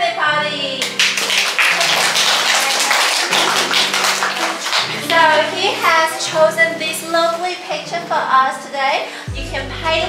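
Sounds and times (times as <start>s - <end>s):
applause: 0.8s - 5.2s.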